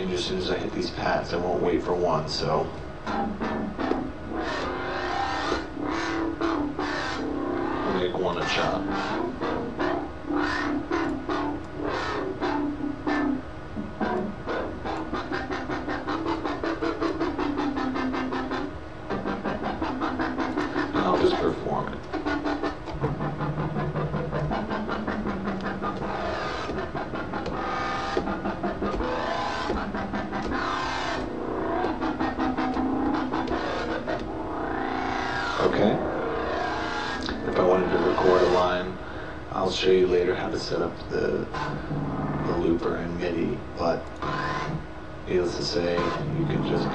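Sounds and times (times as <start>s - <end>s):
pulsing wobble bass synth: 2.4s - 39.1s, 39.8s - 46.9s
synth filter sweeps: 2.4s - 46.9s.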